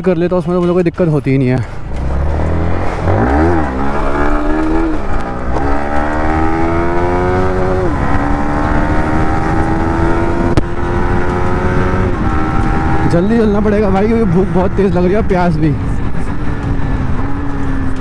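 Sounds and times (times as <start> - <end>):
motorcycle engine accelerating: 1.9 - 18.0.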